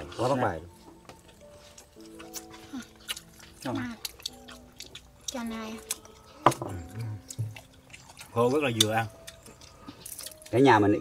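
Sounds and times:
eating sounds: 0:01.1 - 0:10.6.

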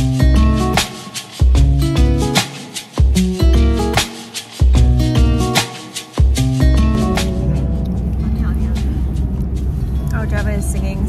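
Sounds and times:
car road and engine rumble: 0:06.6 - 0:11.0
woman's voice: 0:08.2 - 0:09.1, 0:10.1 - 0:11.0.

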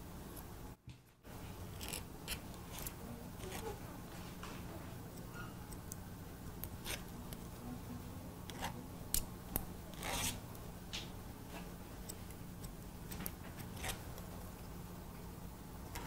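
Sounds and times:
low steady hum: 0:00.0 - 0:16.0
scissors snipping hair: 0:01.8 - 0:03.8.

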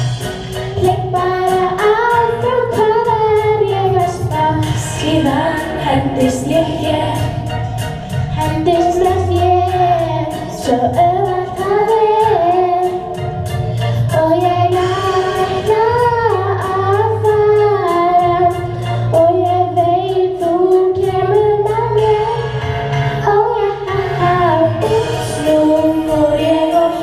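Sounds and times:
instrumental accompaniment with beat: 0:00.0 - 0:27.0.

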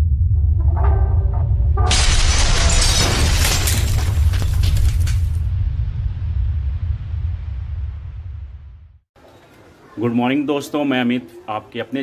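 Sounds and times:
bass drone: 0:00.0 - 0:02.1, 0:05.3 - 0:09.0
deep rumbling music: 0:00.0 - 0:02.2, 0:05.4 - 0:09.0
wall shattering crash: 0:01.9 - 0:05.9.

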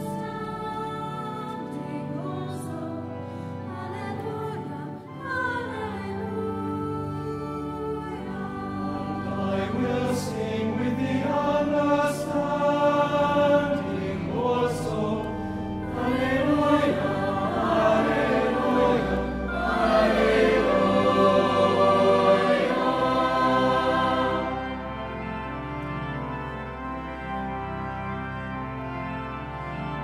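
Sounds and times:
choir singing: 0:00.0 - 0:27.9
organ: 0:00.0 - 0:30.0.

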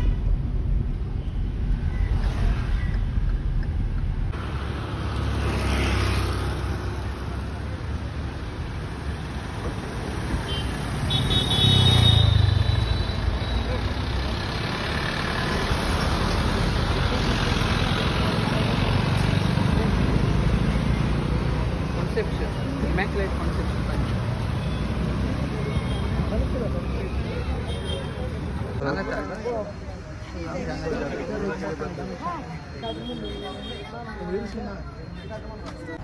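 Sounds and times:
cars passing: 0:00.0 - 0:36.0
car horn sounding: 0:10.5 - 0:13.1
people's voices: 0:13.3 - 0:36.0.

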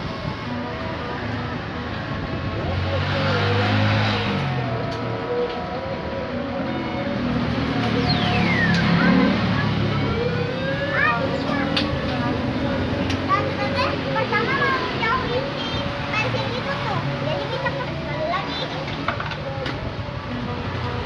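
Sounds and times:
people's voices: 0:07.7 - 0:21.0.

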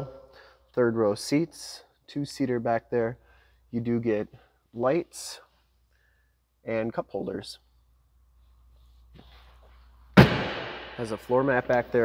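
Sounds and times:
sharp slam: 0:10.2 - 0:11.6.

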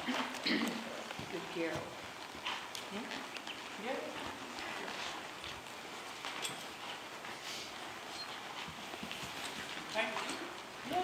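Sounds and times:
horse hooves on soft dirt: 0:00.0 - 0:11.0.

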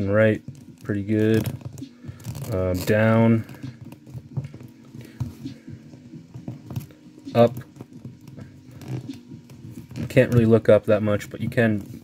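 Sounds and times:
hands rubbing plastic: 0:00.4 - 0:12.0.

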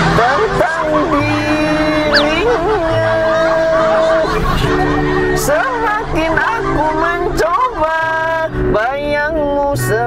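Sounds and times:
man singing off-key: 0:00.0 - 0:04.6, 0:05.3 - 0:10.0
guitar backing music: 0:00.0 - 0:10.0.

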